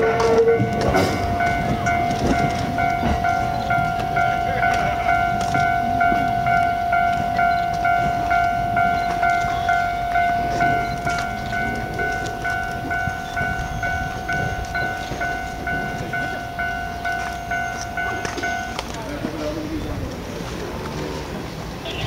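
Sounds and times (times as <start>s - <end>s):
level-crossing alarm ringing: 0.0s - 19.5s
train rumbling: 0.0s - 22.0s.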